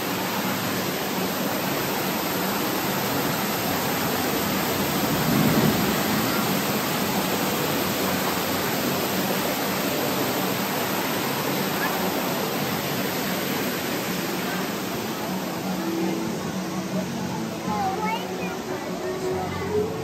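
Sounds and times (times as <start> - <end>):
water rushing over rocks: 0.0 - 20.0.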